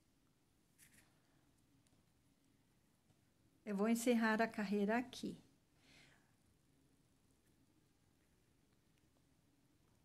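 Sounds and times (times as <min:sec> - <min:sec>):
faint rustle: 0:00.7 - 0:02.1.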